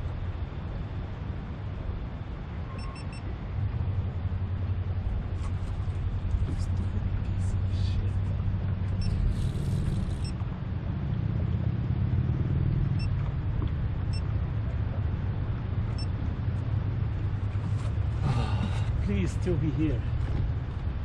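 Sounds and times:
steady low rumble: 0.0s - 11.9s, 12.5s - 21.0s
camera beeps: 2.8s - 3.3s, 9.0s - 10.4s, 13.0s - 13.2s.

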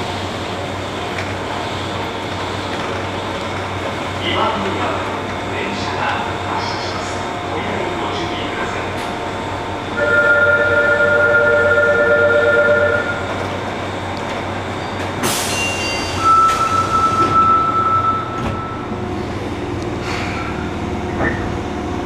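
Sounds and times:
single steady high tone: 10.0s - 13.3s, 15.8s - 18.9s.

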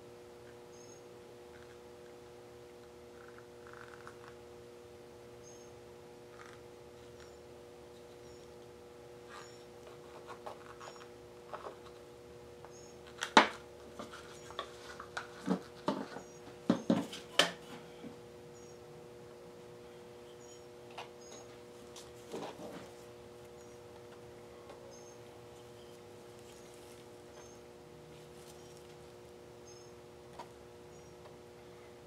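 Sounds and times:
low electrical hum: 0.0s - 32.0s
faint high chirps: 0.7s - 1.1s.

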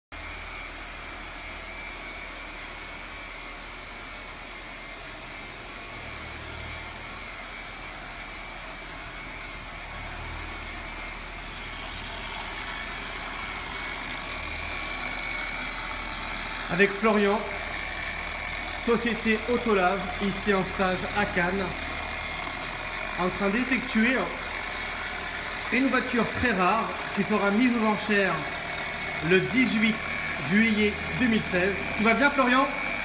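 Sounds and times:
electric car polisher running: 0.2s - 33.0s.

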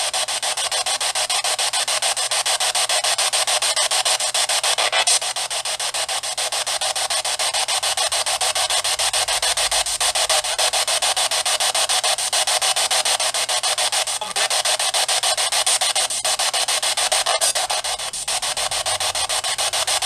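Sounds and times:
pulsing radio static: 3.4s - 20.0s.

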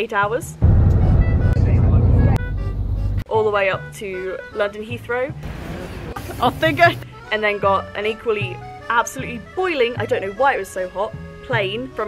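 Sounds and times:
coach engine and road rumble: 0.5s - 3.3s, 5.4s - 7.2s.

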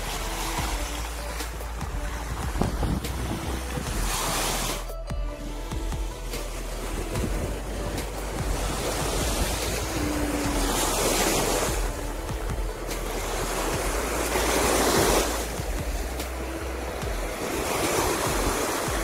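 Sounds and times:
surf washing onto sand beach: 0.0s - 5.0s, 5.8s - 19.0s
wind rumble on microphone: 0.0s - 19.0s.

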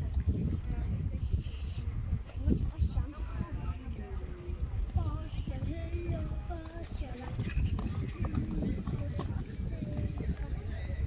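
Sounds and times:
horse hoofbeats on sand: 4.8s - 11.0s.

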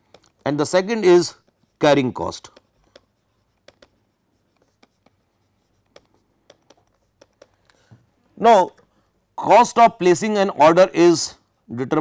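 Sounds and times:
stylus tapping on pen tablet: 2.5s - 4.0s, 4.6s - 5.2s, 5.8s - 7.7s.

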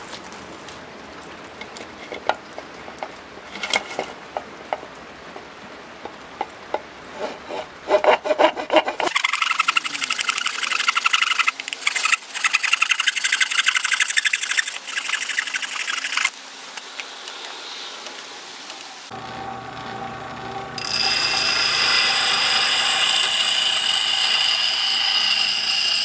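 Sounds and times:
light knocks and scrapes: 1.6s - 9.1s
hand saw rasping through antler: 7.2s - 9.7s.

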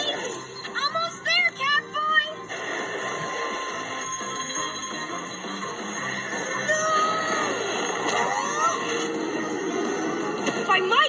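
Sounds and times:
cartoon character voice: 6.6s - 7.6s.

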